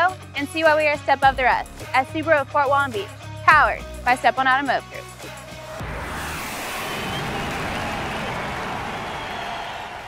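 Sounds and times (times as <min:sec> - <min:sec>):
jet flyby rushing: 0:05.6 - 0:09.6.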